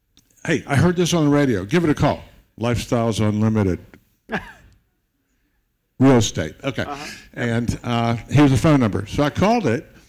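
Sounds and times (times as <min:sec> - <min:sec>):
person sighing: 0:06.8 - 0:07.3.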